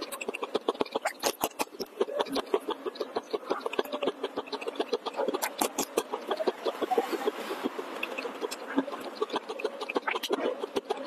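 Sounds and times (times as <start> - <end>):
chewing food: 0.0 - 11.0.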